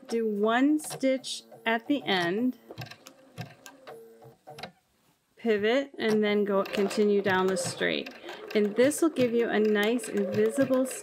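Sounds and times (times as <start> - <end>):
sewing machine clicks: 6.0 - 11.0
sewing machine motor hum: 6.4 - 11.0.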